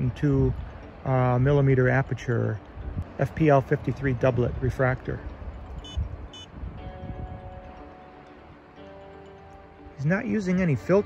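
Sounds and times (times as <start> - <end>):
soft music with held chords: 0.0 - 11.0
short electronic beeps: 5.8 - 6.5.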